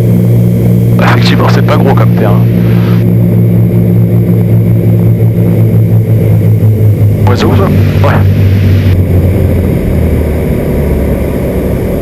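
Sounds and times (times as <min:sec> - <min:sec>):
twin piston aircraft engines droning: 0:00.0 - 0:12.0.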